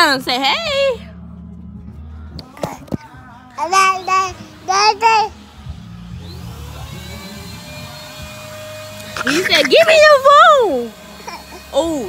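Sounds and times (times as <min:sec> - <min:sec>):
small electric motor whirring: 0:03.8 - 0:12.0.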